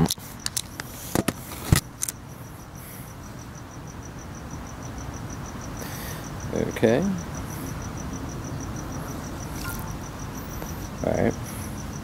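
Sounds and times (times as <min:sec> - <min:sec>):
camera handling clicks and knocks: 0:00.0 - 0:02.2
cricket chirping: 0:00.0 - 0:12.0.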